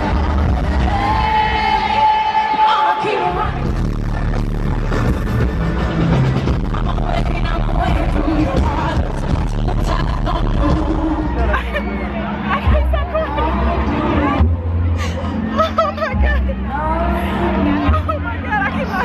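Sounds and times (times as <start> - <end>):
crowd babble: 0.0 - 19.0
live concert music with deep bass: 0.0 - 19.0.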